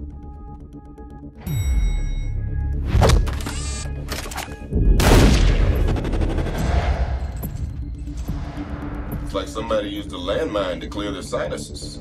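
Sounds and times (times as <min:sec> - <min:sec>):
trailer music: 0:00.0 - 0:12.0.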